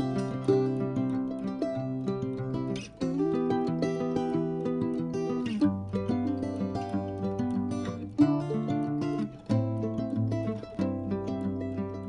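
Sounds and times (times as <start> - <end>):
plucked acoustic guitar notes: 0.0 - 12.0.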